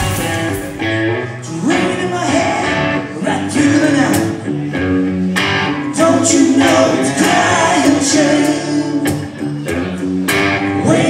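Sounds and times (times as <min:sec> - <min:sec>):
electric guitar line: 0:00.0 - 0:11.0
live rock band playing: 0:00.0 - 0:11.0.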